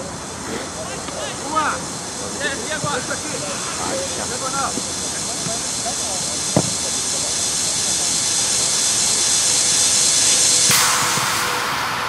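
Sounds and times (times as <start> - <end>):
faint distant voices: 0.0 - 10.0
steady hiss: 0.0 - 12.0.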